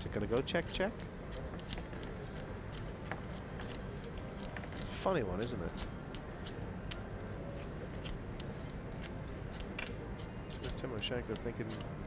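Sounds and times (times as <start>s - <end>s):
low room hum: 0.0s - 12.0s
poker chips clicking: 0.4s - 12.0s.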